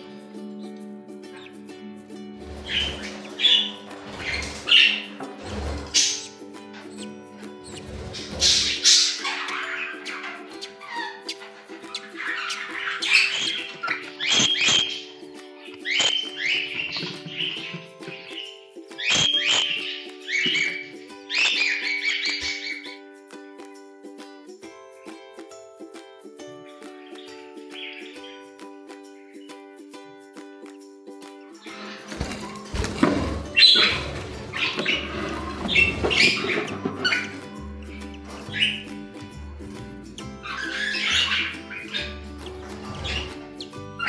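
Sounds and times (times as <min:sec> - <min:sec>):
background music with held notes: 0:00.0 - 0:44.0
budgerigar calls: 0:02.6 - 0:15.2, 0:15.8 - 0:23.0, 0:32.8 - 0:39.0, 0:40.2 - 0:44.0.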